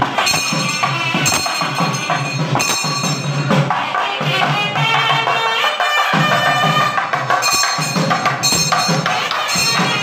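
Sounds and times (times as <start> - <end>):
drums beaten in steady rhythm: 0.0 - 10.0
ringing high tones: 0.2 - 3.7, 7.3 - 10.0.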